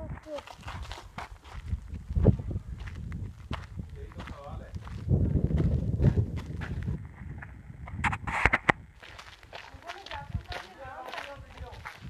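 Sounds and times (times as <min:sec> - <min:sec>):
low microphone rumble: 0:00.0 - 0:09.0
footsteps crunching on gravel: 0:00.0 - 0:12.0.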